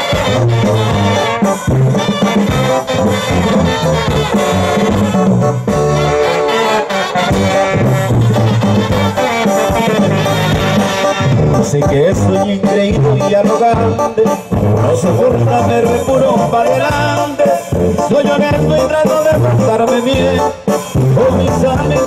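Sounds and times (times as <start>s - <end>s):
brass band dance music: 0.0s - 22.0s.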